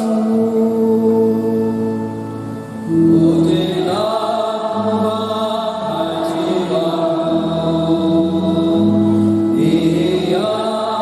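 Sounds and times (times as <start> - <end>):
sustained organ chords: 0.0 - 11.0.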